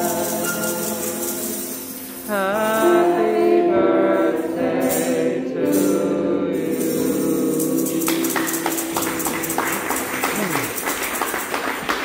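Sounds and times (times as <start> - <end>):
crowd applauding: 8.1 - 12.0.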